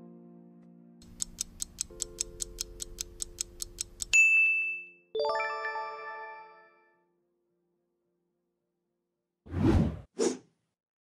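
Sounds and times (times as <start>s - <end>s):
clock-like ticking: 1.0s - 4.2s.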